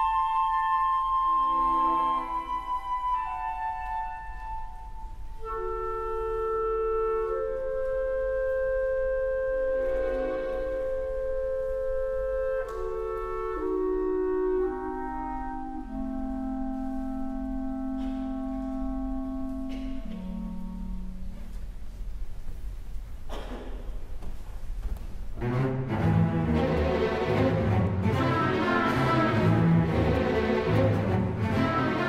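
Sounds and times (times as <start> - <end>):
woodwinds playing sustained chords: 0.0 - 22.0, 25.4 - 32.0.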